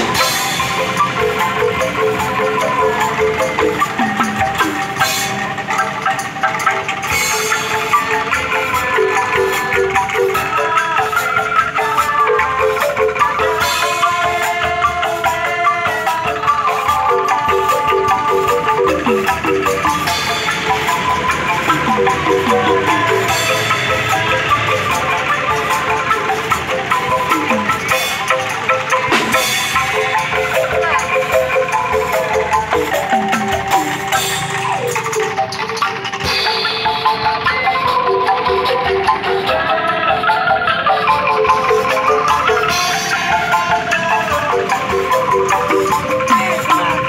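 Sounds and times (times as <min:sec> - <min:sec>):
drum beat: 0:00.0 - 0:10.6, 0:16.4 - 0:40.0
percussion: 0:00.0 - 0:47.0
xylophone melody: 0:00.0 - 0:47.0.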